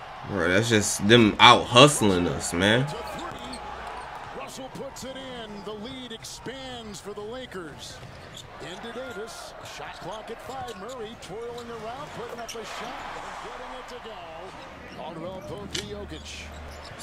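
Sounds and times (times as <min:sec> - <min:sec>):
arena crowd noise: 0:00.0 - 0:17.0.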